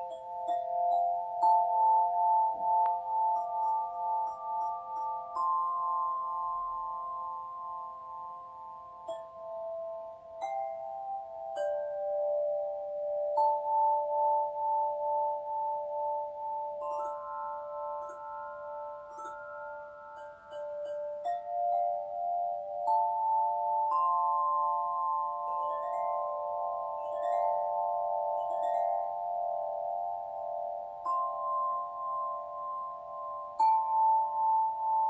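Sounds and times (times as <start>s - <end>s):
singing bowls ringing: 0.0s - 35.0s.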